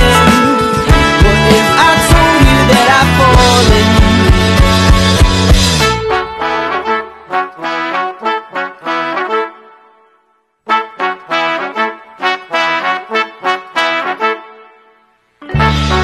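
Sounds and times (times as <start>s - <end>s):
brass melodic phrase: 0.0s - 16.0s.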